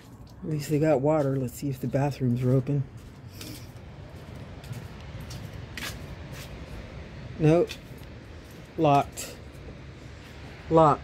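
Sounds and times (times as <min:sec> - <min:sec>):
footsteps on concrete: 0:00.0 - 0:06.9.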